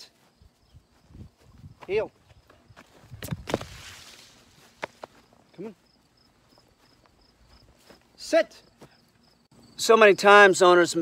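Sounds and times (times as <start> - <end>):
footsteps on grass: 0.0 - 9.5
man speaking: 5.5 - 5.8, 8.2 - 8.7, 9.8 - 11.0.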